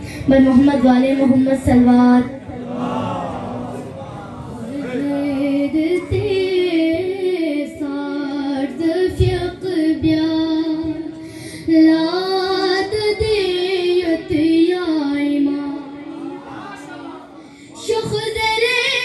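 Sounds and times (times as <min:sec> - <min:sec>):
boy singing into a microphone: 0:00.0 - 0:02.4, 0:04.7 - 0:19.0.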